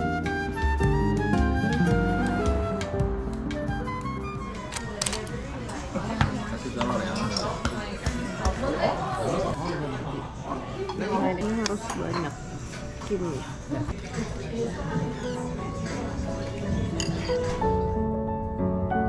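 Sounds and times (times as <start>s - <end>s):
background music: 0.0s - 5.6s, 12.4s - 19.0s
dishes and cutlery clinking: 6.8s - 8.2s, 10.8s - 13.2s, 14.9s - 17.7s.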